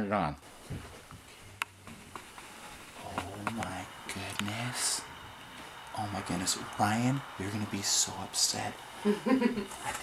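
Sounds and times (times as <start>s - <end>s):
light ticks: 3.1s - 4.6s.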